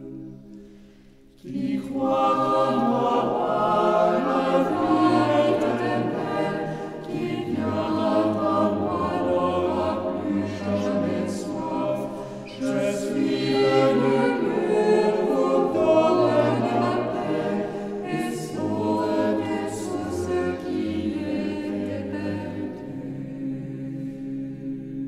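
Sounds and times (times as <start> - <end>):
mixed choir singing a cappella: 1.3 - 25.0.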